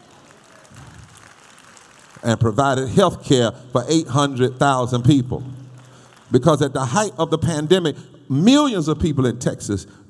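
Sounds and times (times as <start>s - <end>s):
faint applause: 0.0s - 2.5s, 5.4s - 6.4s.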